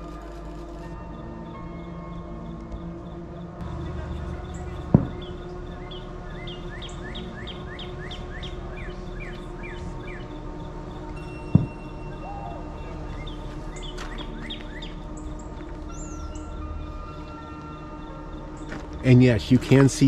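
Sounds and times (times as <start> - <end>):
birds chirping: 0.9 - 20.0.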